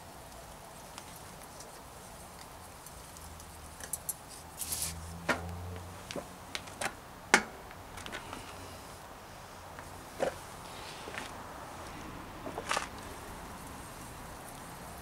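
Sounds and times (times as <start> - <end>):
bike drivetrain clicks and knocks: 2.3 - 4.3.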